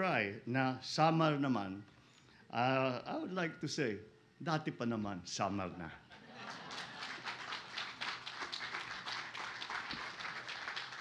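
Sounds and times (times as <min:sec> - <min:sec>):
audience clapping: 0:06.4 - 0:11.0.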